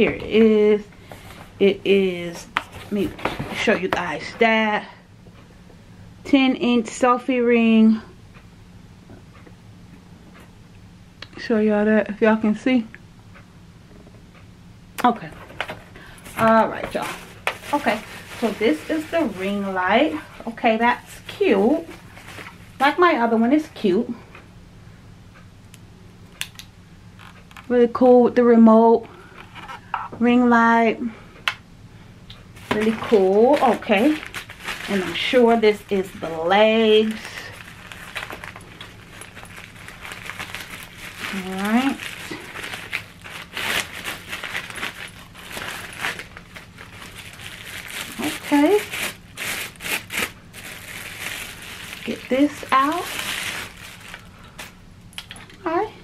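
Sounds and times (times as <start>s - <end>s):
low steady hum: 0.0s - 56.0s
plastic bag crinkling: 15.5s - 23.0s, 32.6s - 54.8s.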